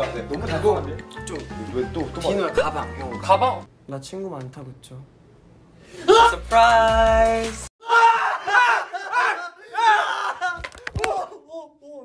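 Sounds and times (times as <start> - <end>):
young men screaming: 7.8 - 11.8.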